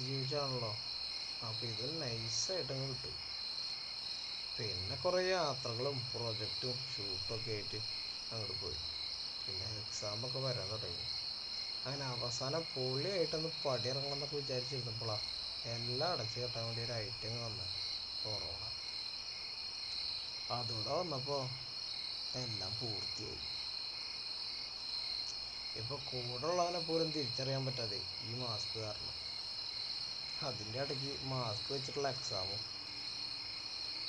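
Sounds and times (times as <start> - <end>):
people talking: 0.0 - 0.8, 1.4 - 3.2, 4.6 - 8.8, 9.5 - 11.0, 11.9 - 17.7, 18.3 - 18.7, 20.5 - 21.6, 22.4 - 23.4, 25.8 - 29.1, 30.4 - 32.6
high-pitched insect chorus: 0.0 - 34.0.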